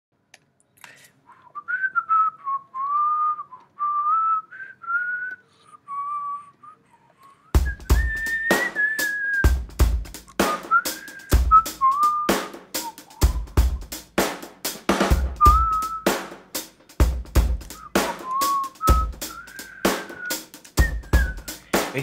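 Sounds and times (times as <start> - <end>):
whistled melody: 1.3 - 14.1, 15.0 - 16.3, 17.6 - 22.0
drum kit beat: 7.6 - 22.0.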